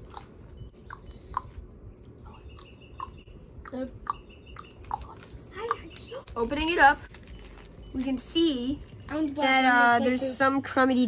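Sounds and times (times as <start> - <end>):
plastic candy wrapper crinkling: 4.8 - 9.1.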